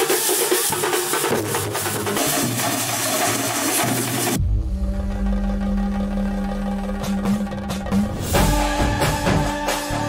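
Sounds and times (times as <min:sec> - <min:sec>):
drums playing fast and loud: 0:00.0 - 0:10.0
deep electronic drone: 0:04.4 - 0:10.0.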